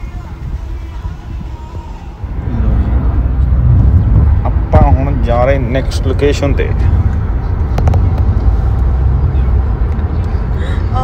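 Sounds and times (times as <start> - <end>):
car road and engine rumble: 0.0 - 11.0
man talking: 4.5 - 7.0.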